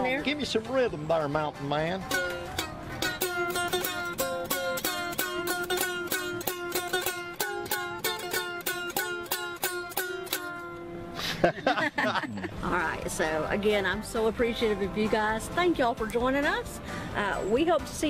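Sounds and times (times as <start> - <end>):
plucked stringed instruments: 0.0 - 18.0
held drone note: 2.0 - 11.3.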